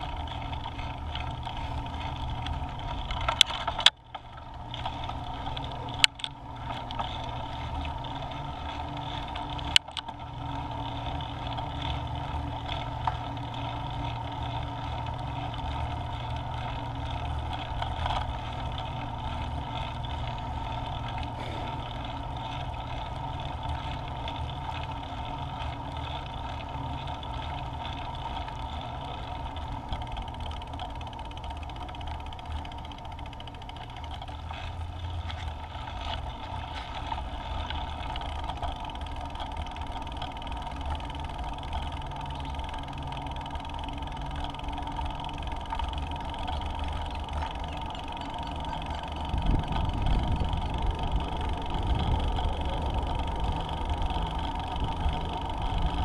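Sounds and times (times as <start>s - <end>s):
scooter wheel and road noise: 0.0s - 56.0s
wind on microphone: 49.2s - 53.1s.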